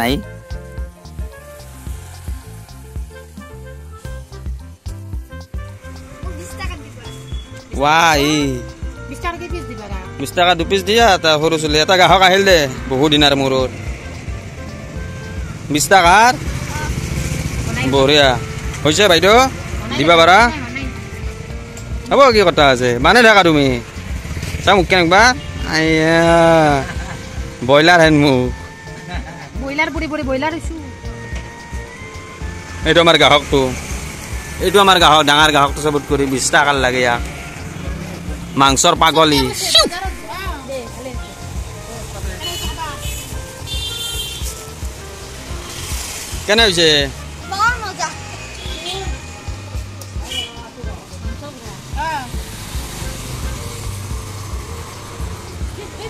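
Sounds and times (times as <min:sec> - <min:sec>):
background music: 0:00.0 - 0:56.0
motorcycle engine rumble: 0:00.0 - 0:56.0.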